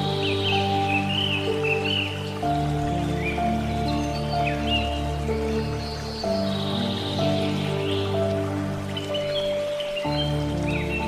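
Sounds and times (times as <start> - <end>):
flowing water hiss: 0.0 - 11.0
soft slow piano music: 0.0 - 11.0.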